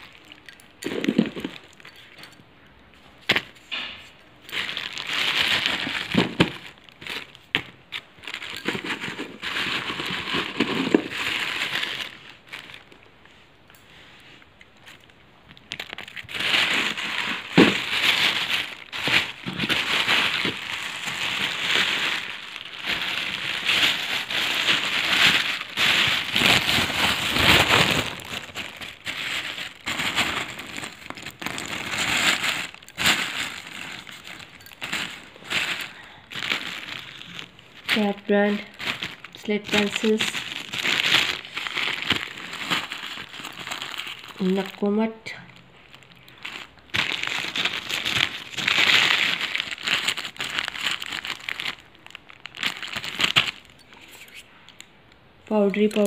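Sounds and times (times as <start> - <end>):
plastic bag and paper crinkling: 0.0 - 2.1, 3.0 - 13.4, 14.2 - 54.4, 55.5 - 56.0.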